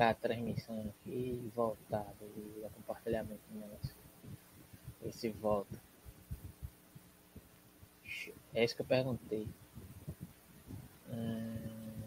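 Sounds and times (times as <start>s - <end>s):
faint electrical hum: 0.0s - 12.0s
soft low thumps: 2.9s - 8.2s, 9.1s - 12.0s.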